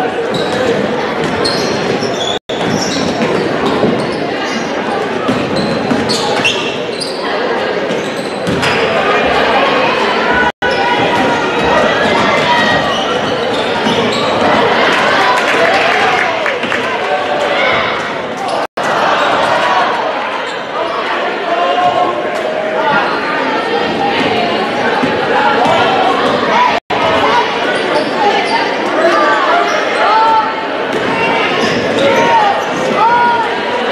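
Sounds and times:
sneakers squeaking: 0:00.0 - 0:09.5, 0:10.4 - 0:14.9, 0:23.8 - 0:33.4
crowd voices talking and calling out: 0:00.0 - 0:33.9.

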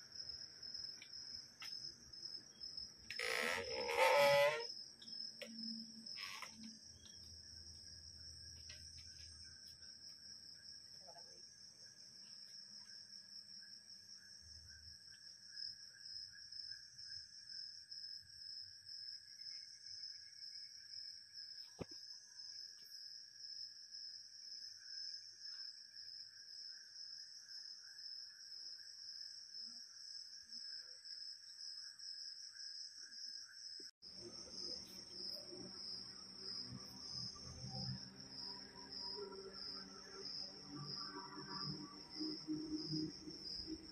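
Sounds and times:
crickets chirring: 0:00.0 - 0:43.9
low insect drone: 0:00.0 - 0:43.9.

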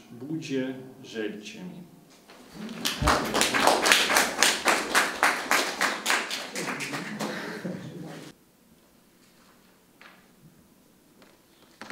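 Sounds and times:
small audience clapping: 0:02.3 - 0:08.3.

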